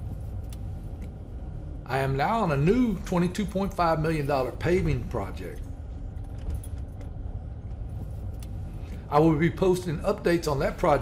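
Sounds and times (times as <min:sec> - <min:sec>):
tyre and engine rumble inside vehicle: 0:02.9 - 0:11.0.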